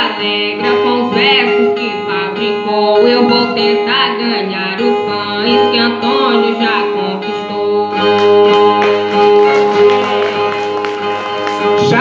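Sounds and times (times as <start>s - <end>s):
string instruments playing: 0.0s - 12.0s.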